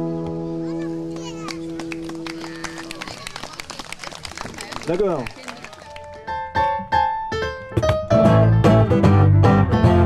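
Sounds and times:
audience clapping: 1.1 - 6.5.

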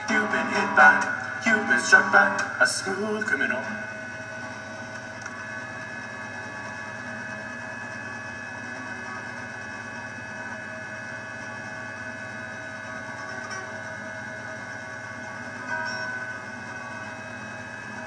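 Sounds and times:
faint high steady tones: 0.0 - 8.4
steady electrical hum: 0.0 - 18.0.

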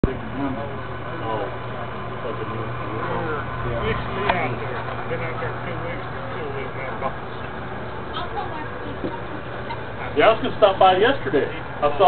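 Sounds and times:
indistinct voices talking: 0.0 - 12.0
steady low hum: 0.0 - 12.0.

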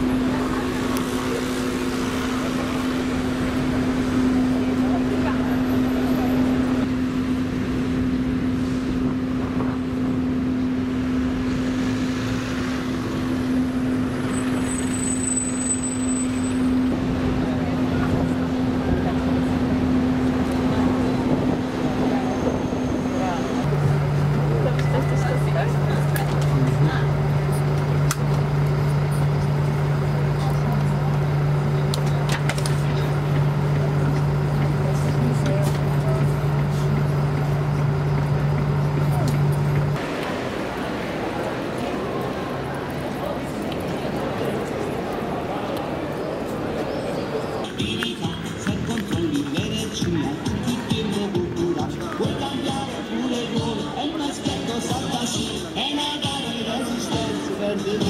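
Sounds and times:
road traffic: 0.0 - 58.0
indistinct voices: 15.7 - 58.0.

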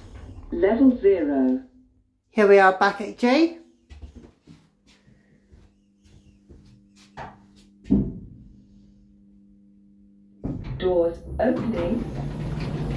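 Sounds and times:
lift electrical hum: 0.0 - 12.9.

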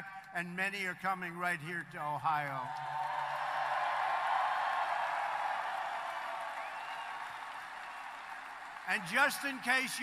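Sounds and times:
crowd cheering and applauding: 2.7 - 10.0.

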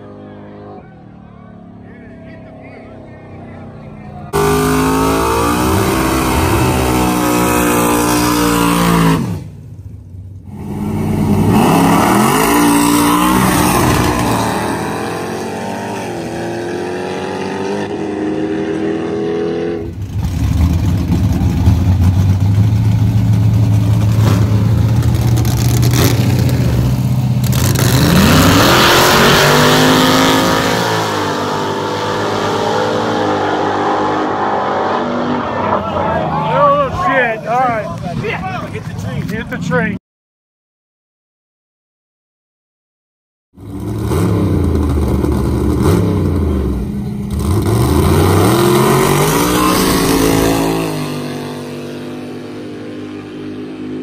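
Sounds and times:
race car engines revving: 0.0 - 40.0, 43.6 - 54.0.

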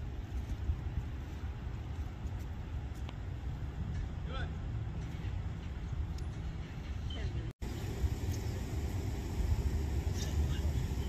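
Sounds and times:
low rumble of road vehicles: 0.0 - 11.0.

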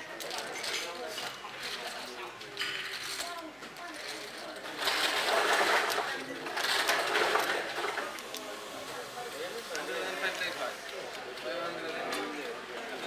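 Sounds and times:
plastic chips clattering: 0.1 - 8.5.

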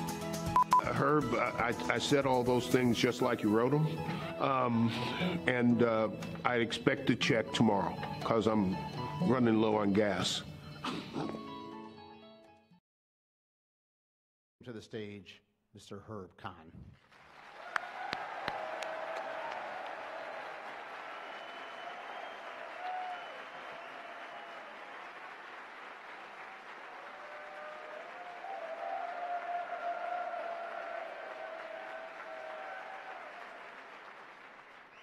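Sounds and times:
large audience applause: 17.0 - 35.0.

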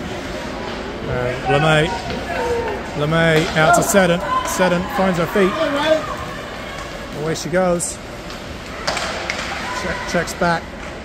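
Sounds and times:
ice rink crowd hubbub: 0.0 - 11.0.

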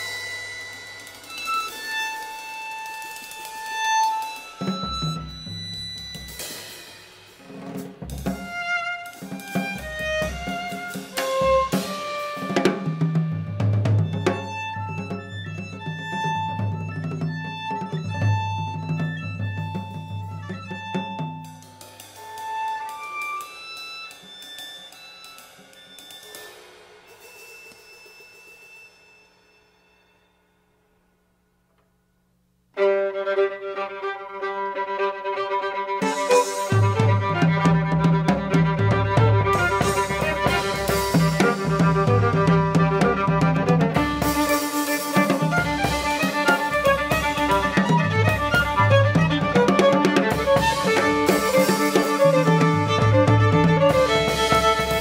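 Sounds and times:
cymbal crash ringing: 0.0 - 2.4
violin bowed notes: 0.0 - 6.7, 8.2 - 24.2, 32.7 - 55.0
hi-hat and cymbal strokes: 0.0 - 12.6, 21.5 - 30.1, 39.4 - 52.9
drum kit hits: 36.0 - 55.0.

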